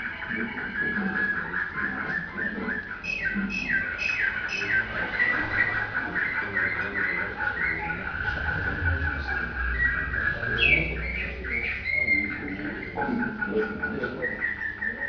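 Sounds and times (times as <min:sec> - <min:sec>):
canary singing trills: 0:00.0 - 0:15.0.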